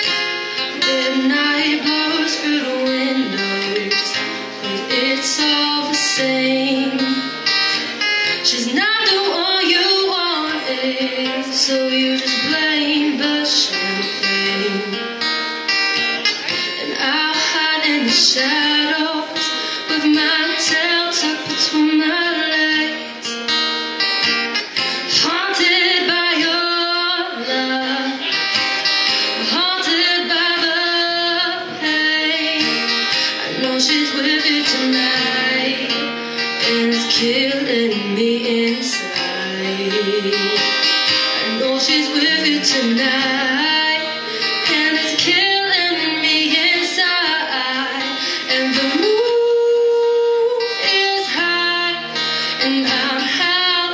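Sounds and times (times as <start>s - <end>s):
woman singing: 0.0s - 15.3s, 16.6s - 24.2s, 24.8s - 53.9s
acoustic guitar strumming: 0.0s - 53.9s.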